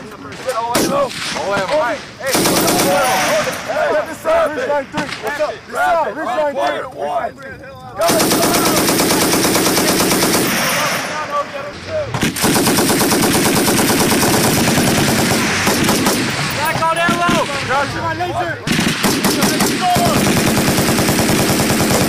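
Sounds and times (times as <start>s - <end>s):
machine guns firing bursts: 2.2s - 4.0s, 8.0s - 11.4s, 12.2s - 17.9s, 18.6s - 22.0s.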